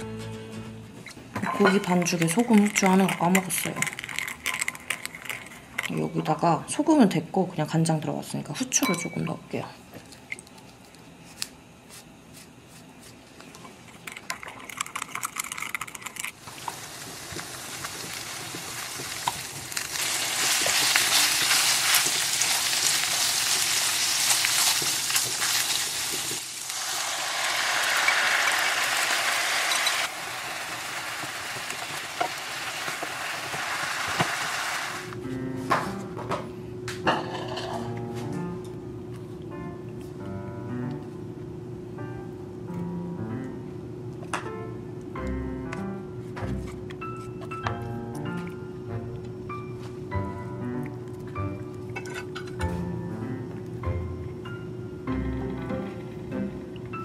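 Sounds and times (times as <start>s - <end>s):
patties sizzling in a frying pan: 16.4s - 35.1s
soft piano music: 35.2s - 57.0s.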